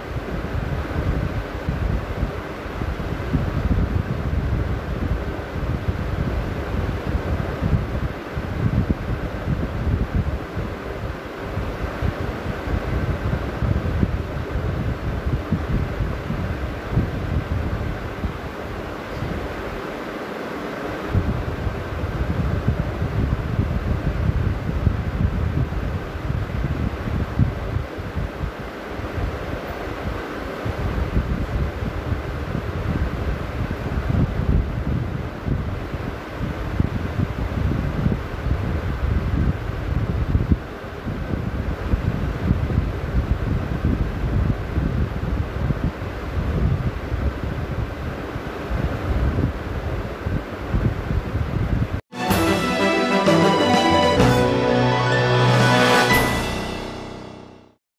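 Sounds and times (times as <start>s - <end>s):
wind buffeting microphone: 21.1s - 28.5s.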